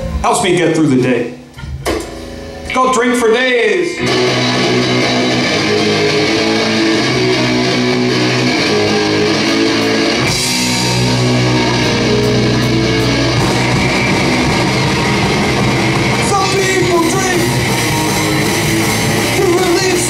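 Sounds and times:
rock band playing: 0:01.8 - 0:03.0, 0:03.8 - 0:20.0
electric guitar riff: 0:03.8 - 0:20.0.

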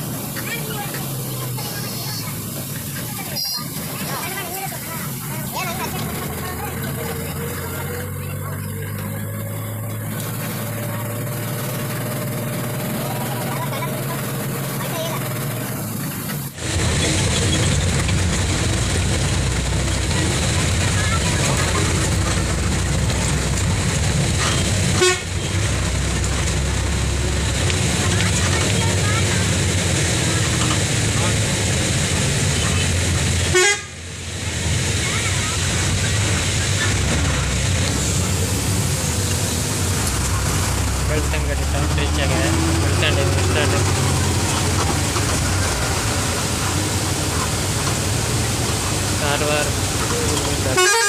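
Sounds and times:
bus engine drone: 0:00.0 - 0:51.0
road noise: 0:00.0 - 0:51.0
horn toots: 0:24.4 - 0:25.8, 0:33.4 - 0:34.0, 0:50.6 - 0:51.0.

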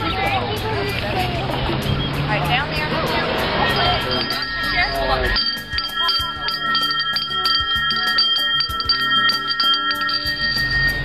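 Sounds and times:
hand bell rung rapidly: 0:03.6 - 0:11.0.

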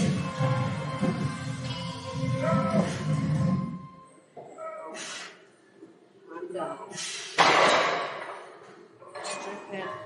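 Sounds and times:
hissing breath: 0:06.9 - 0:07.4.

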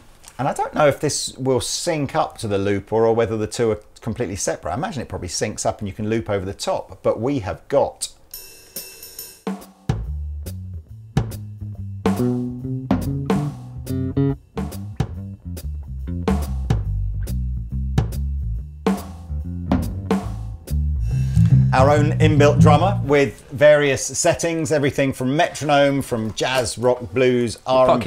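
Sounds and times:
electric bass line: 0:10.4 - 0:23.5
drum machine beat: 0:11.2 - 0:11.5, 0:12.1 - 0:15.4, 0:18.9 - 0:23.5.

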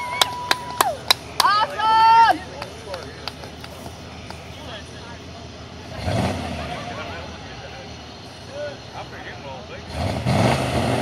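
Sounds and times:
onlookers' voices: 0:00.0 - 0:11.0
car engine revving hard: 0:05.8 - 0:07.3, 0:09.8 - 0:11.0.

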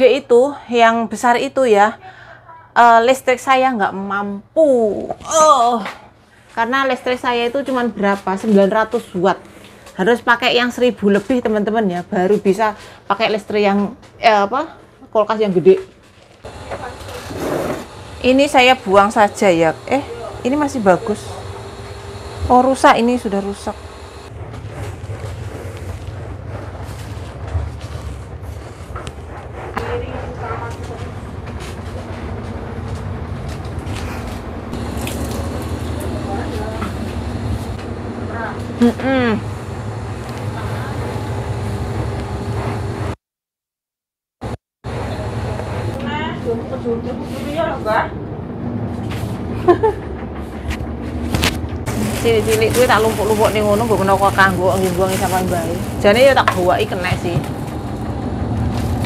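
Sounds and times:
woman talking: 0:00.0 - 0:15.9, 0:16.5 - 0:17.5, 0:18.2 - 0:21.6, 0:22.4 - 0:24.0, 0:29.8 - 0:31.2, 0:36.0 - 0:37.1, 0:38.3 - 0:39.5, 0:40.5 - 0:41.2, 0:45.9 - 0:48.2, 0:51.9 - 0:57.5
steady low hum: 0:16.4 - 0:43.2, 0:44.9 - 0:59.0
steady low rumble: 0:17.9 - 0:42.0.

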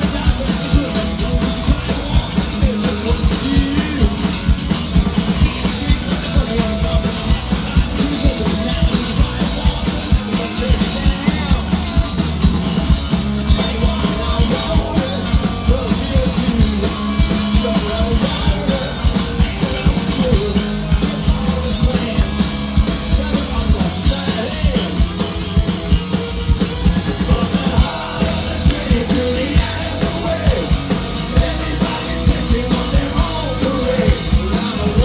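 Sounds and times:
man singing: 0:00.0 - 0:25.9, 0:26.8 - 0:35.0
bass guitar: 0:00.0 - 0:35.0
driving drum beat: 0:00.0 - 0:35.0
electric guitars: 0:00.0 - 0:35.0.

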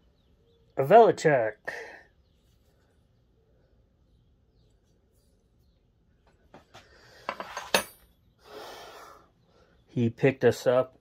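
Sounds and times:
metal wrenches clinking: 0:07.3 - 0:08.1.

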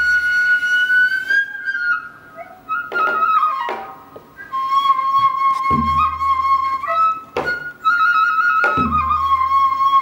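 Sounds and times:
bamboo flute notes: 0:00.0 - 0:10.0.

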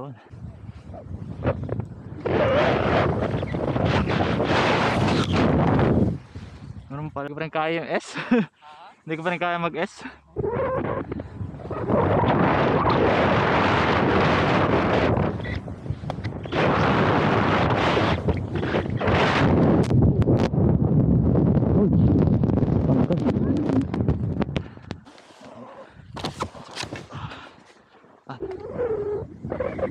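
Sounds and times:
wind rushing over microphone: 0:00.0 - 0:07.2, 0:10.3 - 0:25.1, 0:25.9 - 0:27.4, 0:28.4 - 0:29.9.

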